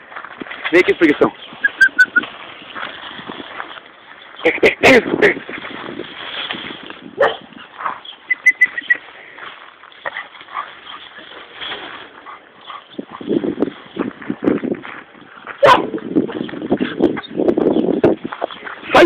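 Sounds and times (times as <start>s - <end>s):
small dog barking: 7.2s - 7.4s, 15.6s - 16.0s.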